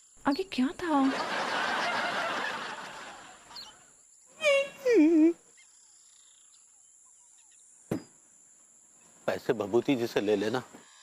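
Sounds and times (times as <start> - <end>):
laugh track laughter: 1.0 - 3.8.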